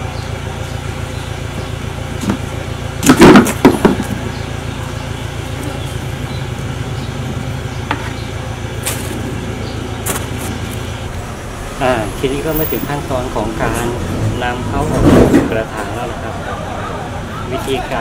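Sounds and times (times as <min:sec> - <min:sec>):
low background rumble: 0:00.0 - 0:18.0.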